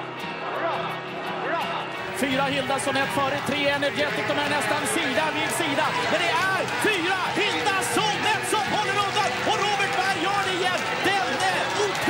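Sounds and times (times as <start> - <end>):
background music: 0.0 - 12.0
fast race commentary: 2.0 - 12.0.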